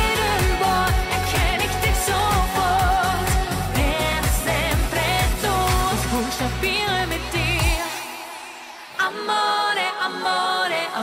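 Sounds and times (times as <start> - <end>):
steady drum beat: 0.0 - 6.7
woman singing with vibrato: 0.0 - 11.0.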